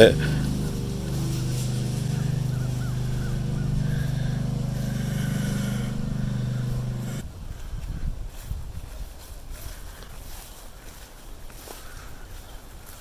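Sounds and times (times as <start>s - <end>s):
engine idling: 0.0s - 7.2s.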